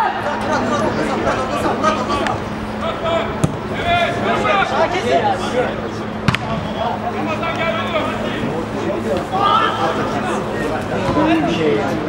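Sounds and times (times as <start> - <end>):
players shouting: 0.0 - 12.0
football kick thud: 6.2 - 6.7.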